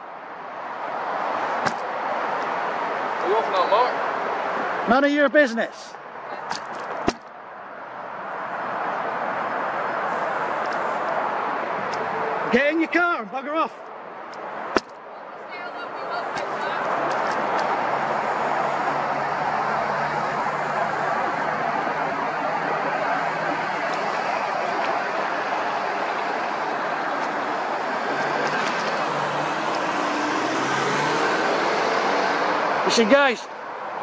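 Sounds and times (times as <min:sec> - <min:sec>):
road traffic rush: 0:00.0 - 0:34.0.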